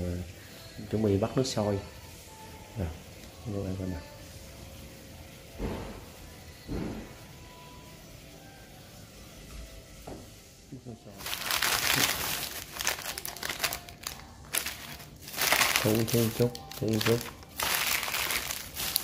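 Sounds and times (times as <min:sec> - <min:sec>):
plastic candy bags crinkling: 0:11.2 - 0:19.0.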